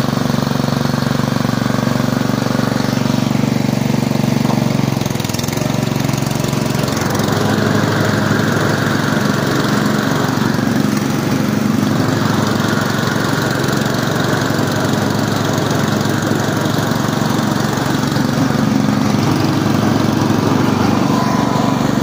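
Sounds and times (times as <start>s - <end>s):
ride-on lawn mower engine running: 0.0s - 22.0s.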